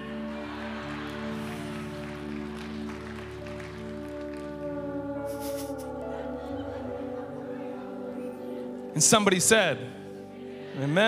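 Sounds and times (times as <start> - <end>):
keyboard pad chords: 0.0 - 11.0.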